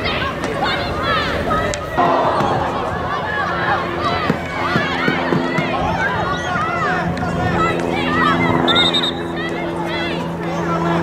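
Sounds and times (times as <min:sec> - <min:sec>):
players shouting and calling out: 0:00.0 - 0:11.0
steady low hum: 0:00.0 - 0:11.0.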